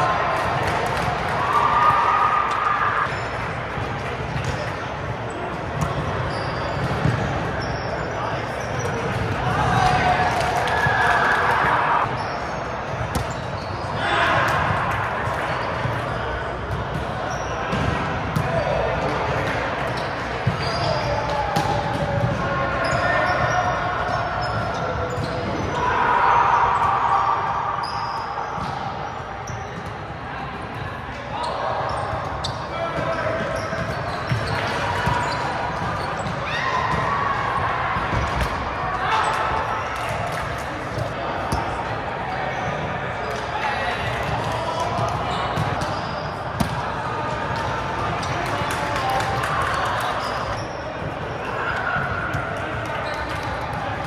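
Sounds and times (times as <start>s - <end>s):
players calling and chattering: 0.0s - 54.0s.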